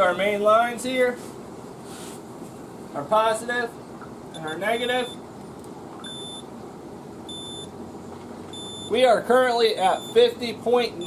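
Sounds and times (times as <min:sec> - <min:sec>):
multimeter beeping: 0:04.4 - 0:05.2, 0:06.0 - 0:06.5, 0:07.3 - 0:07.7, 0:08.5 - 0:09.0, 0:09.8 - 0:11.0.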